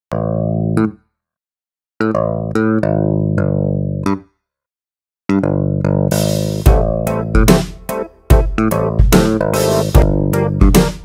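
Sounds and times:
bass guitar plucking: 0.1 - 1.1, 2.0 - 4.4, 5.3 - 11.0.

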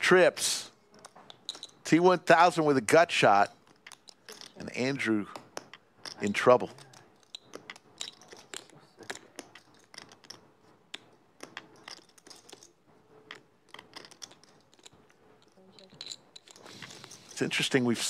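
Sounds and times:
poker chips clicking: 0.9 - 1.8, 3.5 - 17.6.

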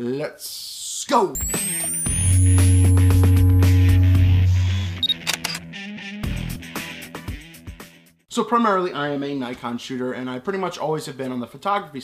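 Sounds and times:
short high beep: 1.4 - 5.6
intro music: 1.4 - 7.8
camera shutter clicks: 5.0 - 5.6.

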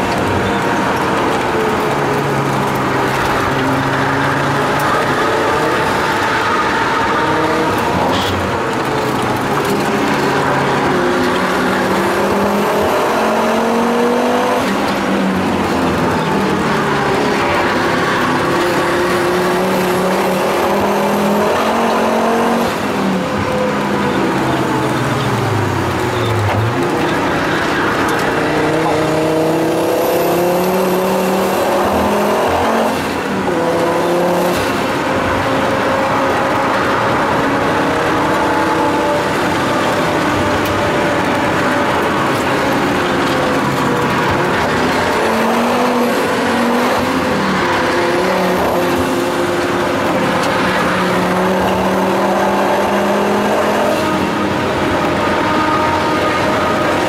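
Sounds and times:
car engine under hard driving: 0.0 - 57.0.

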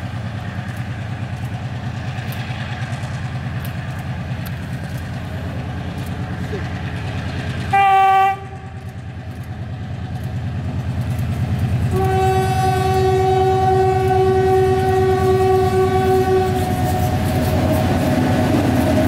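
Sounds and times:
locomotive engine throbbing: 0.0 - 19.0
diesel locomotive horn: 7.7 - 8.8, 11.8 - 19.0.

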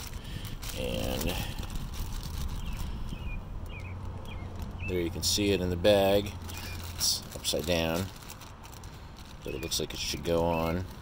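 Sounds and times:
plastic bag crinkling: 0.0 - 11.0
small bird chirping: 2.4 - 5.2.

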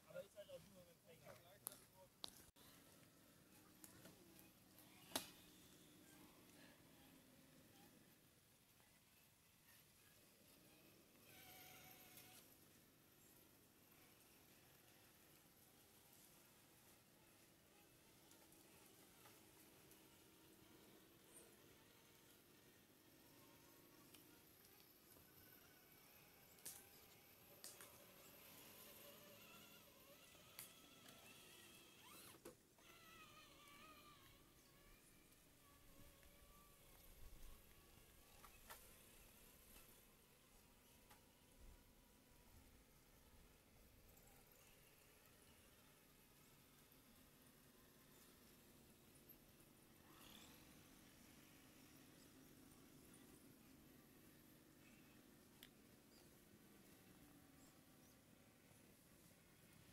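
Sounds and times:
faint outdoor ambience: 0.0 - 59.9
faint wavering whines: 0.1 - 59.9.

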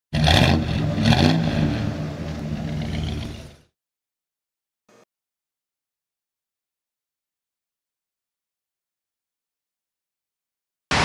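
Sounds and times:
car engine revving: 0.1 - 3.7.

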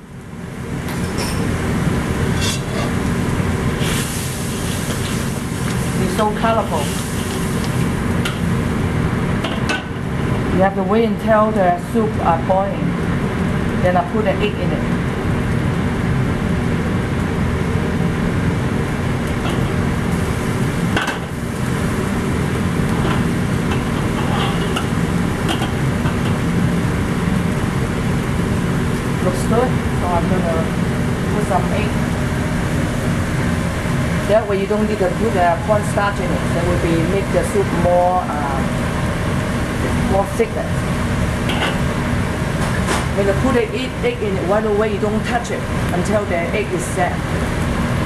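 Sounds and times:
gas burner roaring: 0.0 - 48.0
metal spatula scraping a wok: 2.4 - 3.0, 24.0 - 24.8.

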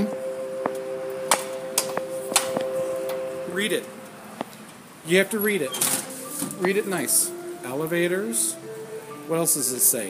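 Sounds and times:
sharp clicks and taps: 0.0 - 3.2
electrical hum: 0.0 - 9.6.

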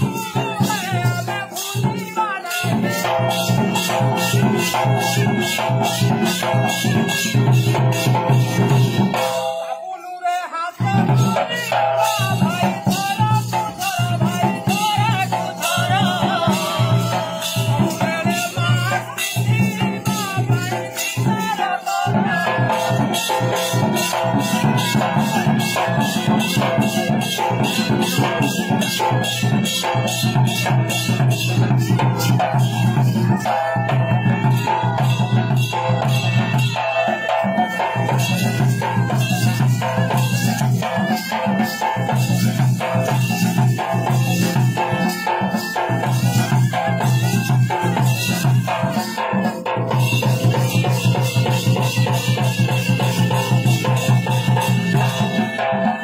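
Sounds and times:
percussion: 0.0 - 56.0.

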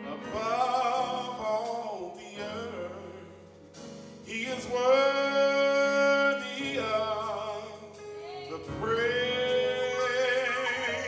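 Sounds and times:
gospel choir singing: 4.4 - 11.0.

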